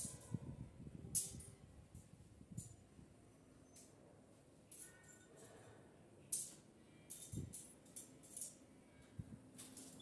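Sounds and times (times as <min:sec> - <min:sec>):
small objects clinking on tiles: 0:06.3 - 0:08.6.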